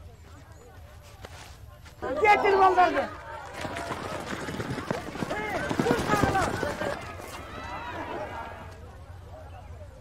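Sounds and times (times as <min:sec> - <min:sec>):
children calling: 0:02.1 - 0:08.9.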